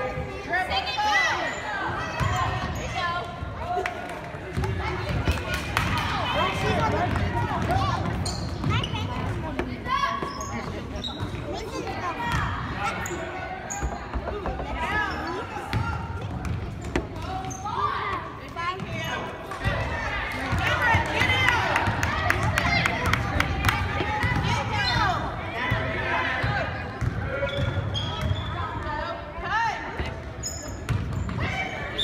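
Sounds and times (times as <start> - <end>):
chatter and shouts of people: 0.0 - 32.0.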